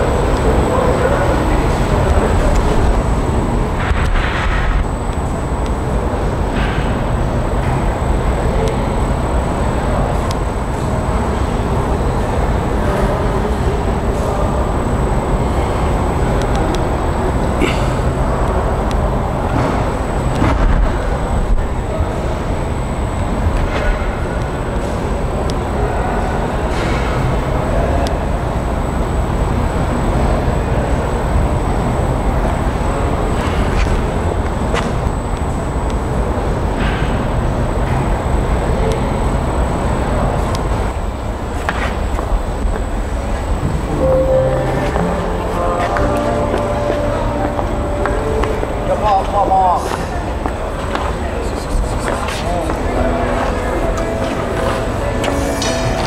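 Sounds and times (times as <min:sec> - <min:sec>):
rumbling hall ambience: 0:00.0 - 0:56.0.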